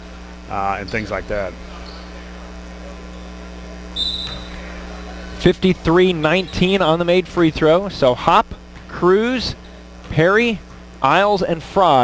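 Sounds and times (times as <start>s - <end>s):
low steady hum: 0.0s - 12.0s
referee whistle blast: 3.9s - 4.6s.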